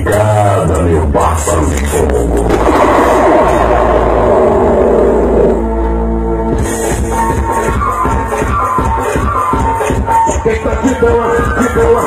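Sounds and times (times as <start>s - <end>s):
heavy bass: 0.0s - 12.0s
electronic dance music: 1.9s - 12.0s.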